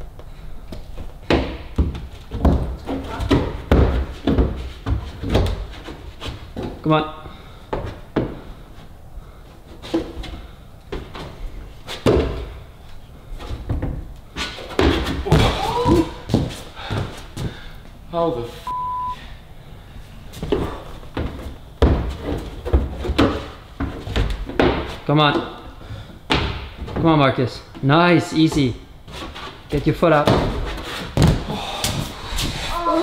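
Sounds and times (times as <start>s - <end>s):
hands and shoes thudding on climbing wall: 0.2s - 8.9s, 9.5s - 12.7s, 13.4s - 17.6s, 20.3s - 27.2s, 27.8s - 33.0s.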